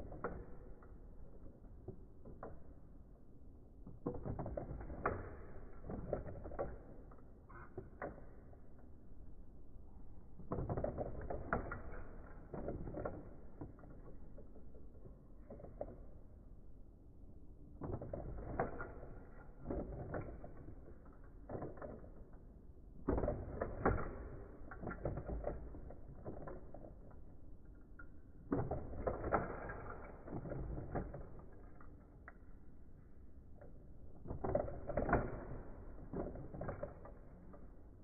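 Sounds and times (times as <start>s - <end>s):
plastic toy clicking and rattling: 33.3s - 38.0s.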